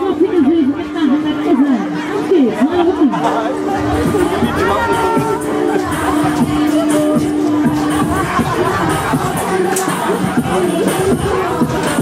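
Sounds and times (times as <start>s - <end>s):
voice over music: 0.0s - 11.6s
crowd chatter: 0.0s - 12.0s
loud fairground ride music: 0.0s - 12.0s.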